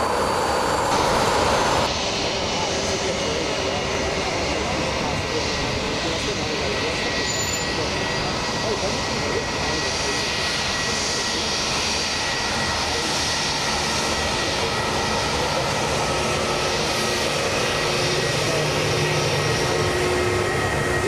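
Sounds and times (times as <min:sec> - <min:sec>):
jet engine whine: 0:00.0 - 0:21.0.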